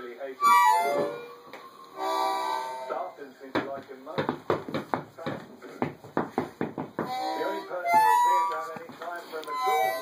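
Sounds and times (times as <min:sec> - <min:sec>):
breathy harmonica start: 0:00.4 - 0:03.2, 0:07.0 - 0:10.0
harmonica chord: 0:00.4 - 0:03.3, 0:07.0 - 0:10.0.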